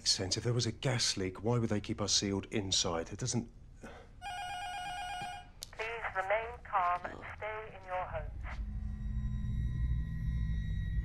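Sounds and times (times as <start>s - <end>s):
electronic telephone tone: 4.2s - 5.5s
tinny voice through telephone: 5.8s - 8.3s.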